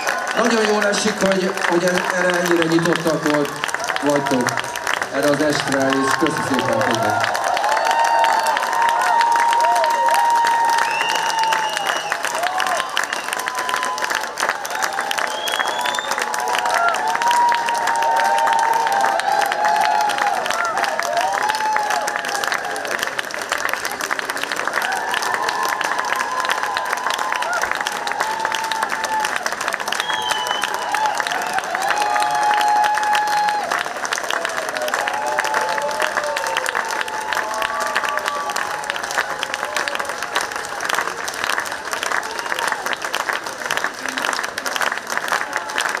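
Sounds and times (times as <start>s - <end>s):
audience applauding: 0.0s - 46.0s.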